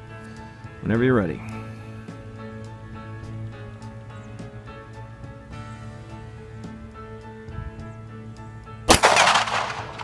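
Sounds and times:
pistol shot: 0:08.9 - 0:10.0.

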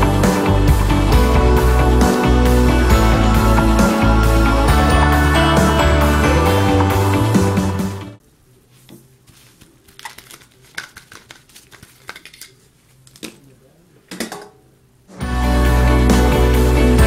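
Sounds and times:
background music: 0:00.0 - 0:08.2, 0:15.1 - 0:17.0.

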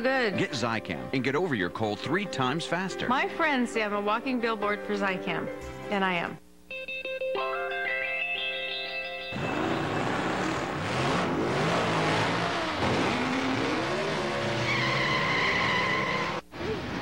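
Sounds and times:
racing car engines revving: 0:09.4 - 0:17.0
tire squeal: 0:09.4 - 0:17.0.

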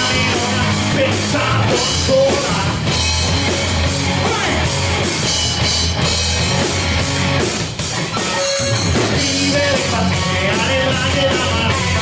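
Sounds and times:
bass guitar: 0:00.0 - 0:12.0
drum kit: 0:00.0 - 0:12.0
electric guitar: 0:00.0 - 0:12.0.

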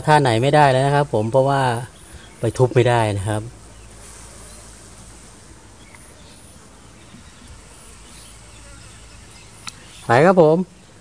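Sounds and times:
bees buzzing: 0:00.0 - 0:11.0
low outdoor hiss: 0:00.0 - 0:11.0.

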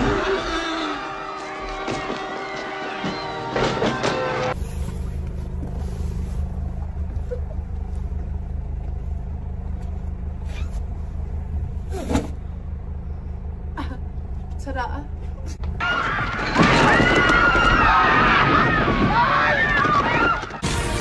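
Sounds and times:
car engine idling: 0:04.5 - 0:15.9
music: 0:20.6 - 0:21.0.

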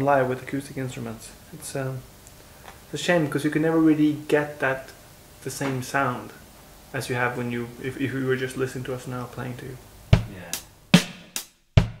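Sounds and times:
kick drum strokes: 0:10.1 - 0:12.0
snare or cymbal strokes: 0:10.1 - 0:12.0.

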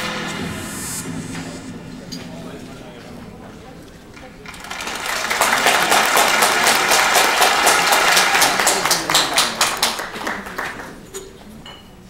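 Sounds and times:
audience applauding: 0:04.1 - 0:11.2.

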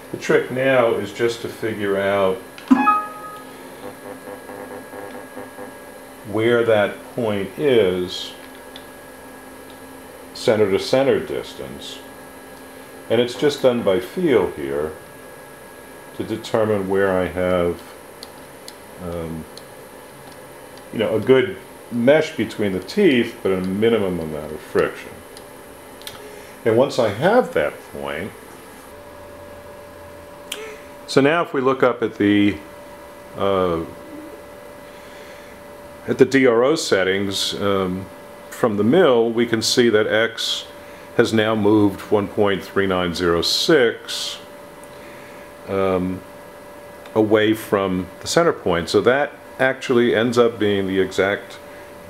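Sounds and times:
low steady hum: 0:00.0 - 0:52.0
short clear tone: 0:02.7 - 0:03.6.

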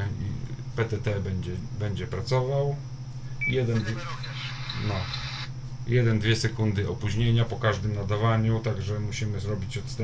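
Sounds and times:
low electrical hum: 0:00.0 - 0:10.0
radio hiss: 0:03.4 - 0:05.6
faint voice over radio: 0:03.7 - 0:05.5.

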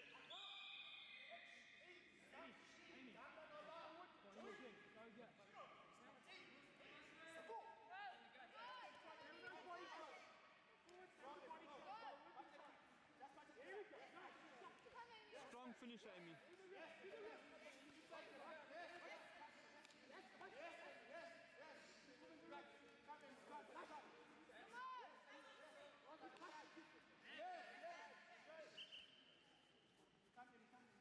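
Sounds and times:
crowd chatter in a hall: 0:00.0 - 0:31.0.

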